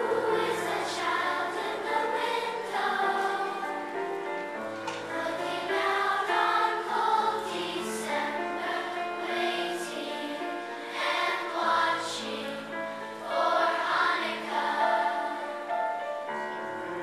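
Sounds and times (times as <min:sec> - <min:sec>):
children's choir singing: 0:00.0 - 0:17.0.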